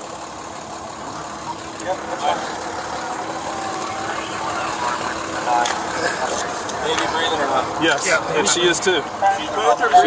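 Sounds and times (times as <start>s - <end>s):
vehicle engine idling: 0.0s - 10.0s
muffled voices: 0.9s - 10.0s.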